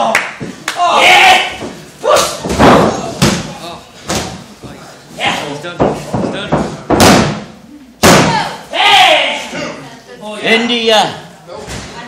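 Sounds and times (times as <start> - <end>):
people shouting: 0.7 - 3.1, 8.1 - 9.6
bodies slamming on ring mat: 1.6 - 3.5, 5.9 - 8.5.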